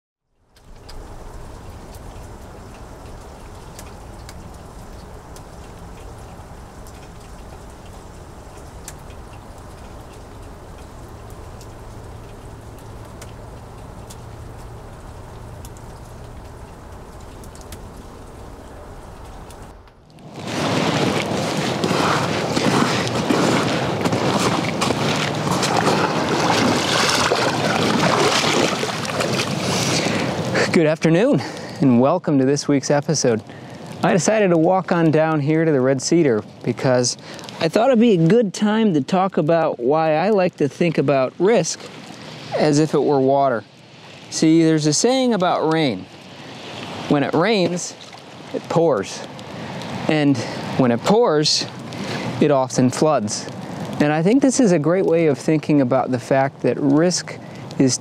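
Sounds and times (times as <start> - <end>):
rain: 0.3 - 58.0
faint ticks: 0.4 - 20.2
heavy rain hissing: 0.6 - 58.0.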